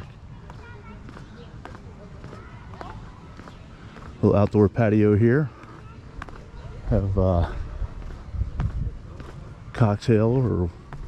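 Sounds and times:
faint voices: 0.0 - 11.0
steady low background noise: 0.0 - 11.0.

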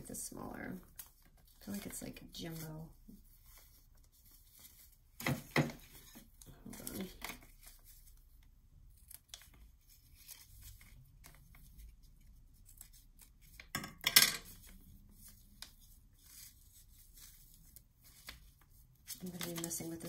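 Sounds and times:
rustling of ribbon and paper: 0.0 - 13.8, 14.4 - 20.0.

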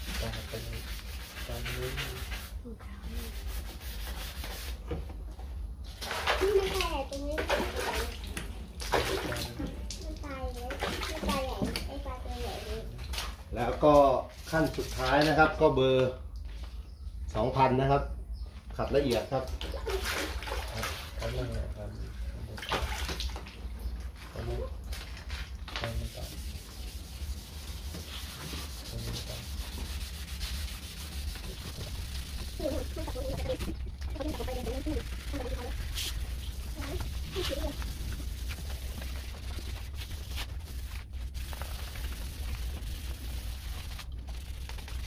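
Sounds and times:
sandpaper rubbing plastic: 0.0 - 4.8, 25.9 - 45.0
water splashing in a bucket: 5.9 - 11.9, 19.1 - 21.8, 22.4 - 26.0, 30.9 - 45.0
steady low rumble: 28.9 - 45.0
person talking: 32.5 - 35.8.

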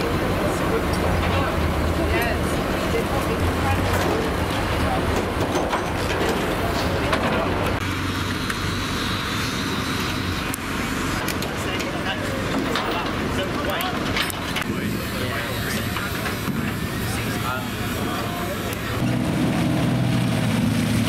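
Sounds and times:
indistinct voices talking: 0.0 - 7.8, 8.6 - 19.3
low engine hum: 0.0 - 21.0.

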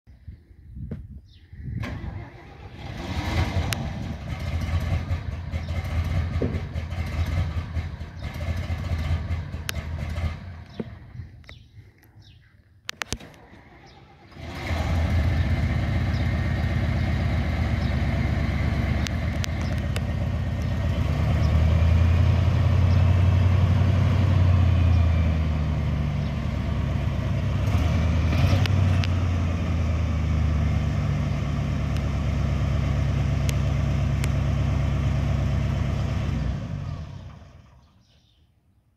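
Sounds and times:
truck engine starting and running: 1.6 - 12.1, 12.9 - 38.3
truck engine revving: 1.8 - 11.1, 13.2 - 37.9.

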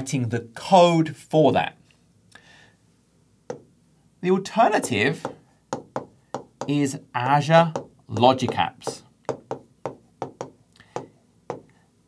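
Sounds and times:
stylus tapping on glass screen: 4.8 - 6.8, 7.8 - 11.7.

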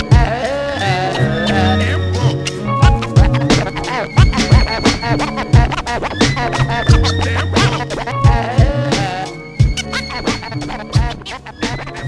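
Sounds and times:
hip-hop beat: 0.0 - 12.0
record scratching: 0.0 - 12.0.

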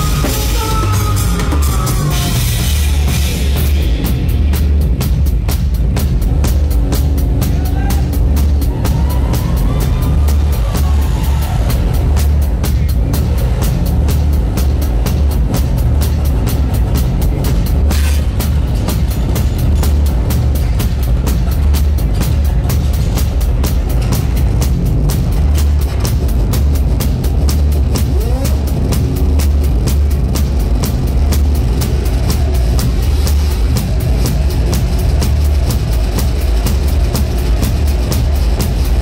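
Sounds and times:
fast drum kit playing: 0.0 - 39.0
loud band music: 0.0 - 39.0.

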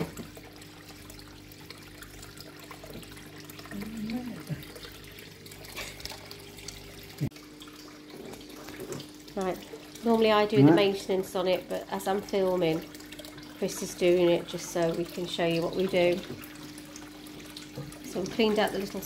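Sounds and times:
water sloshing and trickling: 0.0 - 19.0.

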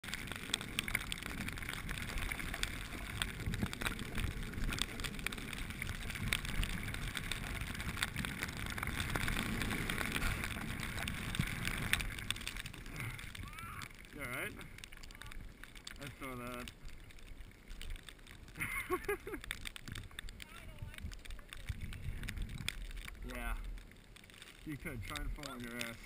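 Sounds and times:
wind buffeting microphone: 0.0 - 15.6, 19.8 - 23.6
skis scraping over hard snow: 0.0 - 26.0.

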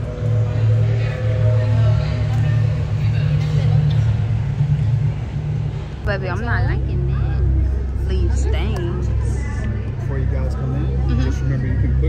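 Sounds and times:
loud low rumble: 0.0 - 12.0.

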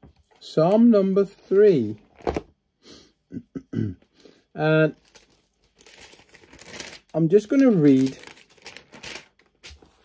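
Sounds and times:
book pages rustling: 5.0 - 10.0.

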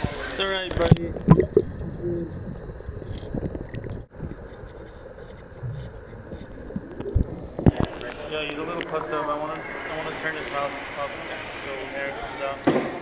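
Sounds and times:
water sloshing and rumbling: 0.7 - 9.2.

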